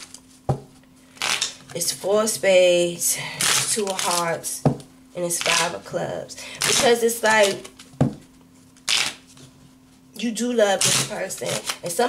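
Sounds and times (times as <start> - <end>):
cards being shuffled: 1.2 - 1.7, 6.6 - 9.5, 10.8 - 12.0.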